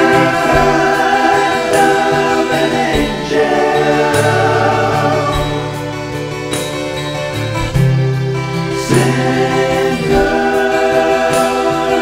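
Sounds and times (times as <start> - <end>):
choir-like harmony singing: 0.0 - 6.6, 7.7 - 12.0
backing music: 0.0 - 12.0.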